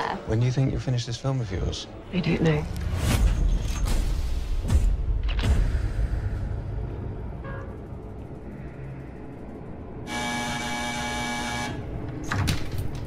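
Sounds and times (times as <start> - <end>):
low dark drone: 4.4 - 12.4
electric door buzzer: 10.1 - 12.0.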